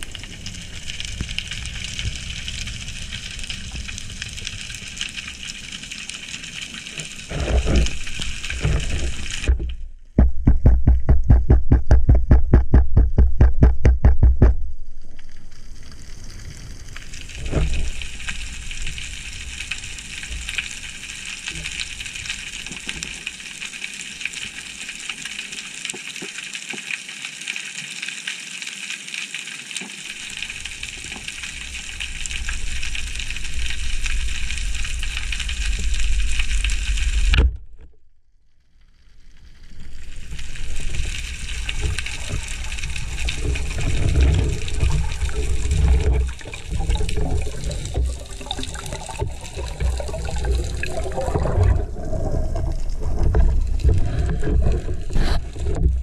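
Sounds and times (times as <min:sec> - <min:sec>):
low thumps: 0:08.6 - 0:15.0
low rhythmic pulsing: 0:09.6 - 0:15.0.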